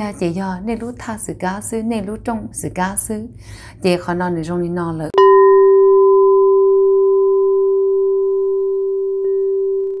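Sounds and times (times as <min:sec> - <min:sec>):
struck metal bell ringing: 0:05.2 - 0:09.8.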